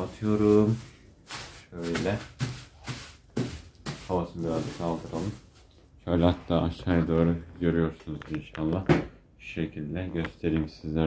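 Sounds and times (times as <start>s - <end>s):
plastic bag crinkling: 0.0s - 6.0s.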